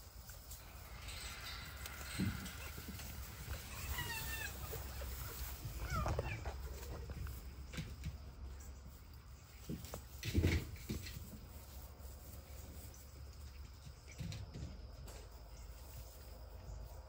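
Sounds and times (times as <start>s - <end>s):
grass rustling: 0.0s - 17.0s.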